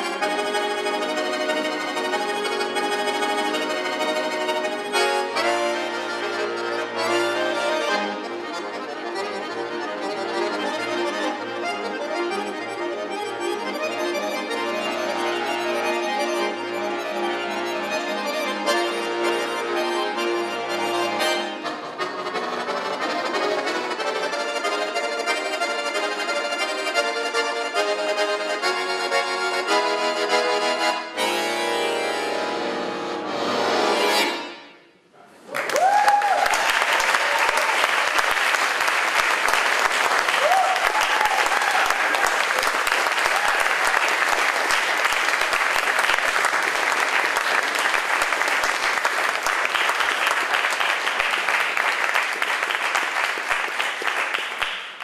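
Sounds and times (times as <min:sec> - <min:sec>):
button accordion playing: 0:00.0 - 0:35.0, 0:42.0 - 0:54.6
audience applauding: 0:35.4 - 0:55.0
shouted whoops: 0:35.5 - 0:37.7, 0:40.4 - 0:42.2.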